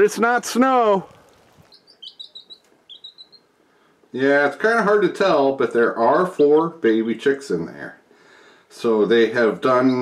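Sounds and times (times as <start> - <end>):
baby chicks peeping: 1.1 - 3.7.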